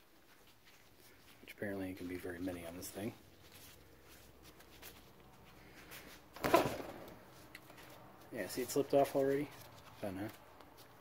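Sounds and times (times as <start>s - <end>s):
handling noise: 2.5s - 11.0s.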